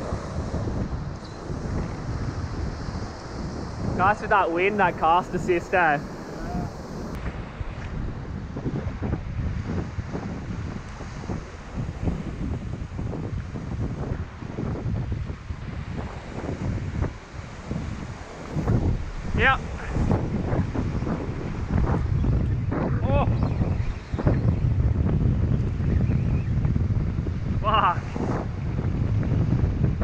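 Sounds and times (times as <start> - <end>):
surf washing against rock: 0.0 - 8.1, 9.4 - 22.0
wind buffeting microphone: 0.0 - 30.0.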